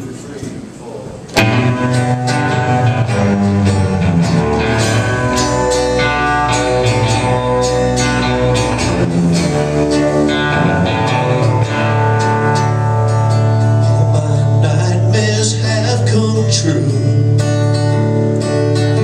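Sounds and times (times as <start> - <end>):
guitars: 1.3 - 19.0
upright bass: 1.4 - 19.0.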